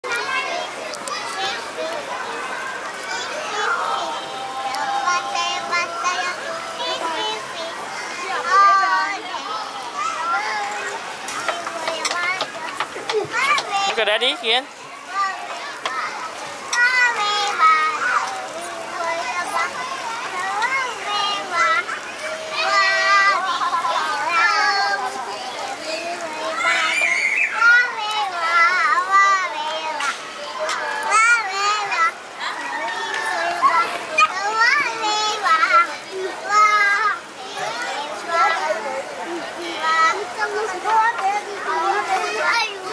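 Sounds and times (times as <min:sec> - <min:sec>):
children talking and calling out: 0:00.0 - 0:42.9
toddler singing: 0:03.1 - 0:09.3, 0:10.0 - 0:12.7, 0:15.1 - 0:32.2, 0:32.8 - 0:38.6.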